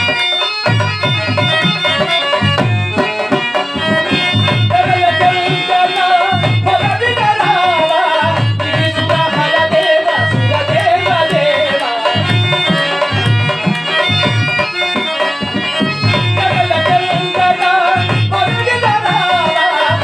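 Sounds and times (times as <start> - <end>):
held instrumental notes: 0.0 - 20.0
tabla strokes: 0.0 - 20.0
man singing into microphone: 2.9 - 20.0.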